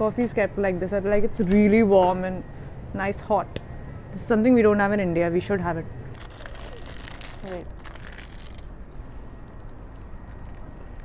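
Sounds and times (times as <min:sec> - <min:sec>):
plastic packaging crinkling: 0:06.1 - 0:11.0.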